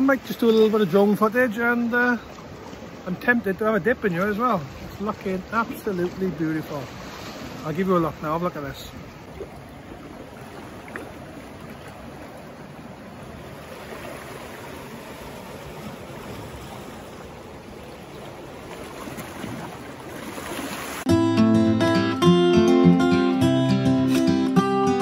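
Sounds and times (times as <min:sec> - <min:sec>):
waves lapping against rocks: 0:00.0 - 0:21.1.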